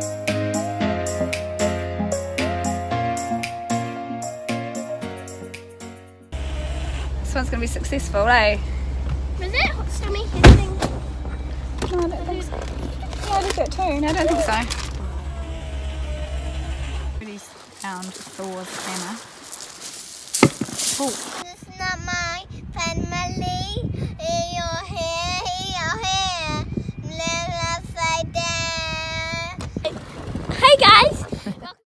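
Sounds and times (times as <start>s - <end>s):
car interior rumble: 6.4s - 17.2s
voices: 9.3s - 19.3s
girl singing: 21.5s - 29.6s.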